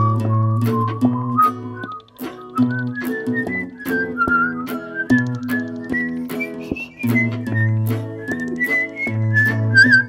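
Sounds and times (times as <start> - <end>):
strummed guitar chords: 0.0 - 10.0
whistled melody: 0.0 - 10.0.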